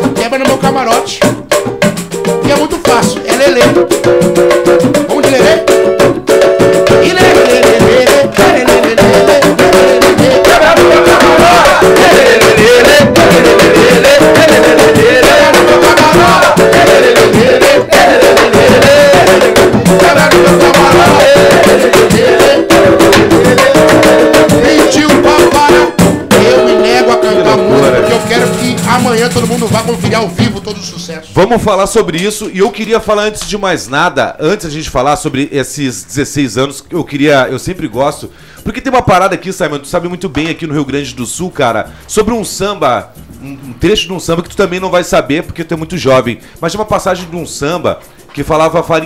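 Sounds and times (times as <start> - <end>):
samba percussion with shaker: 0.0 - 33.5, 37.5 - 49.0
voices singing a melody: 4.9 - 5.8, 6.8 - 30.5.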